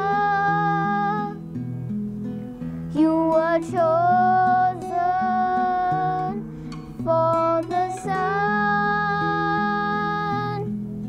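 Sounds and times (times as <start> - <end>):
high voice singing: 0.0 - 1.4, 3.0 - 10.8
strummed acoustic guitar: 0.0 - 11.0.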